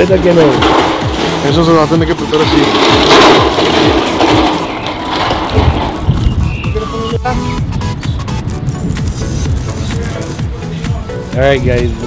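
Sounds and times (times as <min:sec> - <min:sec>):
background music with thumping beat: 0:00.0 - 0:12.0
arm rubbing against camera: 0:08.3 - 0:11.8.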